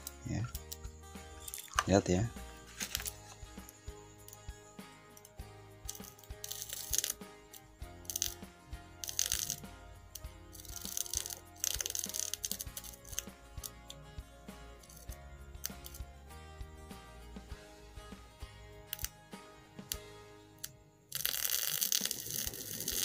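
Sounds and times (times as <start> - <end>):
crackling bursts: 0.0 - 14.0, 14.6 - 16.1, 18.9 - 19.2, 19.9 - 23.0
background music: 0.0 - 23.0.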